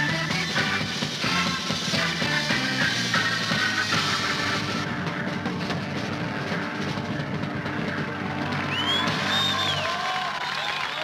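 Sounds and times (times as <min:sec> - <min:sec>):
jazz-rock band chord: 0:00.0 - 0:08.5
high whistling tone: 0:08.7 - 0:10.0.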